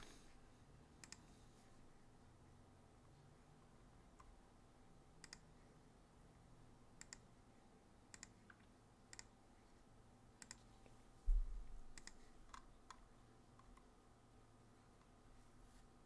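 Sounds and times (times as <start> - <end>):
low thump: 11.3 - 11.7.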